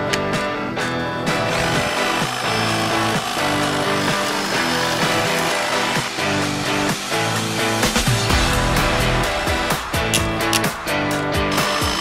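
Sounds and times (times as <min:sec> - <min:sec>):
background music: 0:00.0 - 0:12.0
hedge trimmer running: 0:01.3 - 0:08.1, 0:11.5 - 0:12.0.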